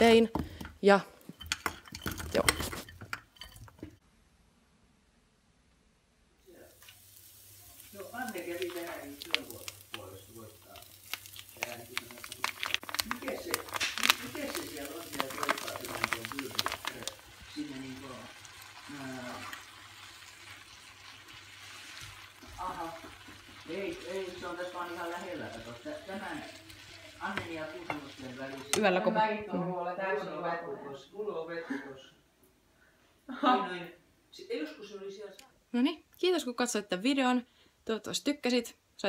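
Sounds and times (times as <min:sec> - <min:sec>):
food pieces dropping into frying pan: 0:06.8 - 0:18.6
plastic spatula stirring: 0:07.8 - 0:18.0.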